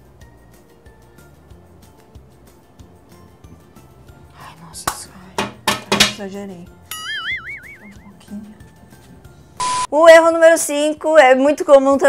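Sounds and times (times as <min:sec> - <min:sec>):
background music: 0:00.0 - 0:12.0
cartoonish wavering whistle: 0:06.9 - 0:08.2.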